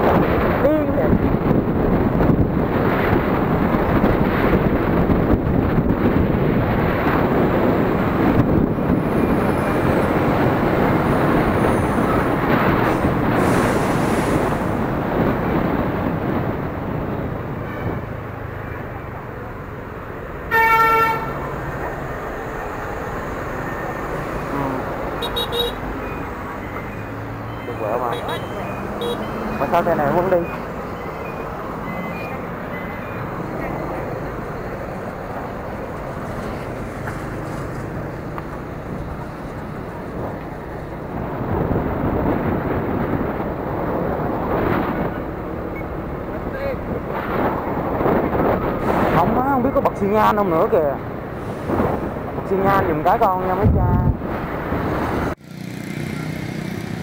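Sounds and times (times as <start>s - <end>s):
wind rushing over microphone: 0.0s - 25.2s, 25.8s - 55.4s
motorbike road noise: 0.0s - 57.0s
vehicle horn toot: 20.5s - 21.4s, 25.2s - 25.8s, 28.0s - 29.3s.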